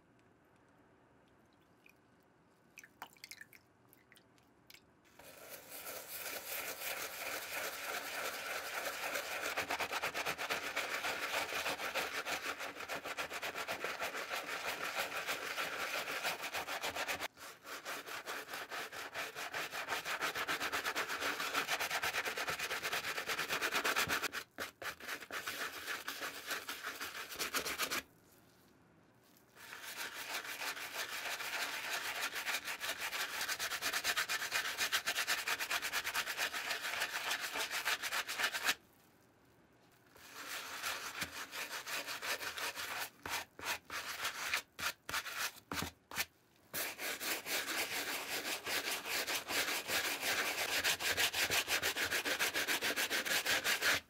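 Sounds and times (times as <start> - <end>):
faint water drips: 0.6 - 5.0
brush scrubbing wet sneaker: 5.2 - 28.0, 29.6 - 38.8, 40.2 - 45.8.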